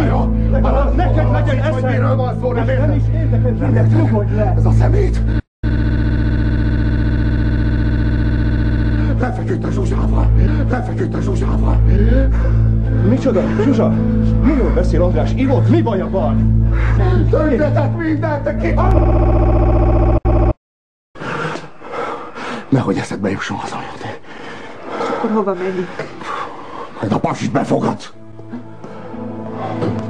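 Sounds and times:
man's voice: 0:00.0 - 0:05.3, 0:09.0 - 0:16.4
electronic buzzing tone: 0:05.6 - 0:09.2, 0:18.8 - 0:20.6.

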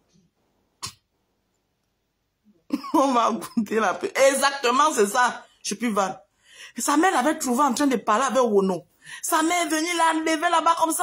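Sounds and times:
woman coughing: 0:02.7 - 0:03.8
woman speaking: 0:02.8 - 0:06.2, 0:06.8 - 0:11.0.

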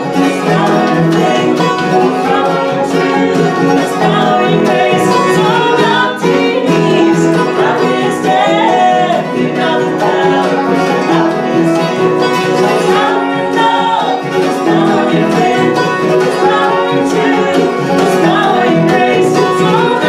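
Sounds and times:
bluegrass band playing: 0:00.0 - 0:20.0
voices singing in harmony: 0:00.0 - 0:20.0.

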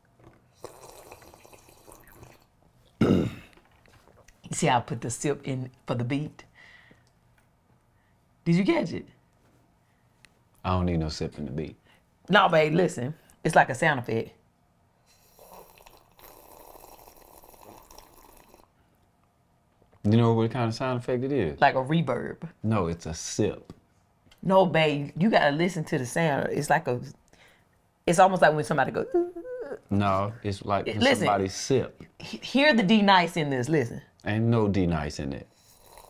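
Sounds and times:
woman sipping from a mug: 0:00.2 - 0:02.5, 0:15.3 - 0:18.7
person slurping hot drink: 0:00.5 - 0:02.5, 0:15.1 - 0:18.7, 0:35.6 - 0:36.0.

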